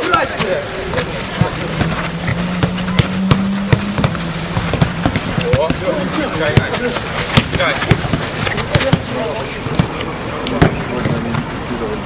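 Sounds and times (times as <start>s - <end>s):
boot kicking football: 0.0s - 10.0s
voices across pitch: 0.0s - 12.0s.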